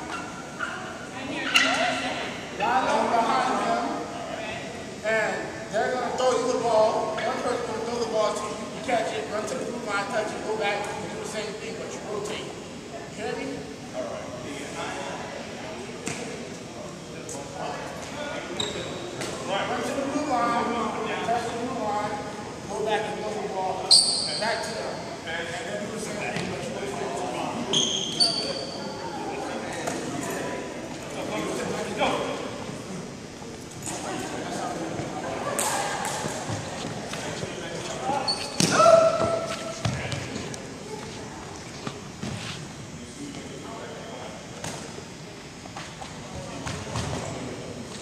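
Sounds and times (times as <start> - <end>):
sneaker squeaks: 18.5 - 19.4, 23.8 - 24.9, 27.6 - 29.0, 37.9 - 40.4.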